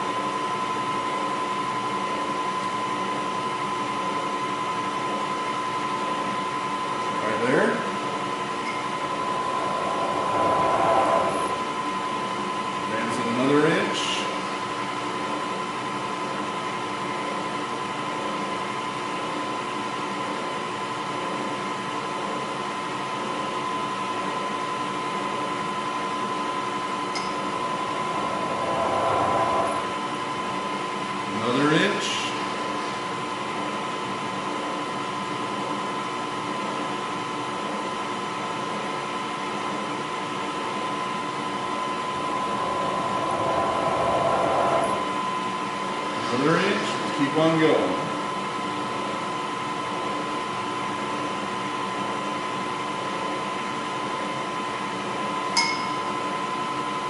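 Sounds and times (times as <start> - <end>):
milling machine spindle whine: 7.5 - 13.6, 26.3 - 31.6, 41.1 - 47.0
short rising whirs: 8.4 - 12.5, 26.9 - 30.9, 41.4 - 46.4.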